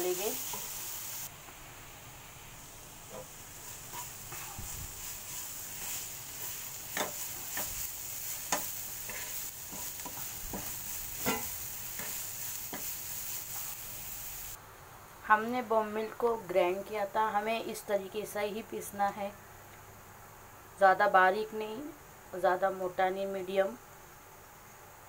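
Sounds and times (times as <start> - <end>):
chillies sizzling in oil: 0.0 - 14.6
wooden spatula scraping pan: 8.5 - 13.7.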